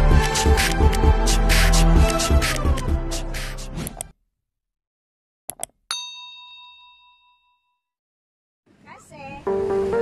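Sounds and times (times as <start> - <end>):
bell ding ringing out: 5.9 - 7.8.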